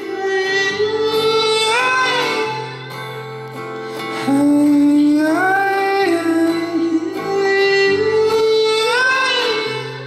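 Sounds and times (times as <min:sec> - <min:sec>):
acoustic folk music: 0:00.0 - 0:10.0.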